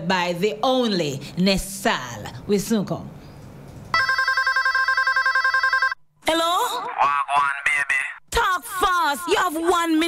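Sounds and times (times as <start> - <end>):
electronic telephone ringing: 4.0 - 6.0.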